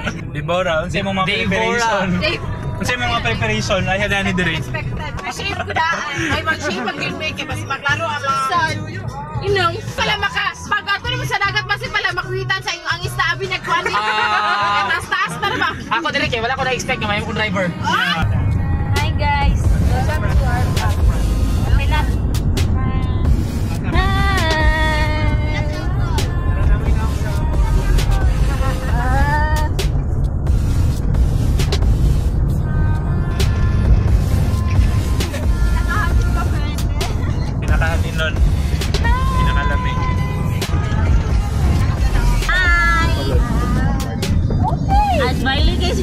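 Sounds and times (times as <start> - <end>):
music: 0.0 - 46.0
vehicle rumble from inside cabin: 0.0 - 46.0
voices: 1.2 - 30.0, 32.4 - 46.0.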